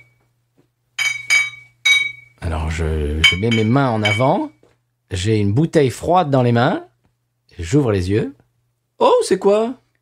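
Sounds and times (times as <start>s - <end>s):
glass clinking: 1.0s - 2.4s, 3.2s - 4.5s.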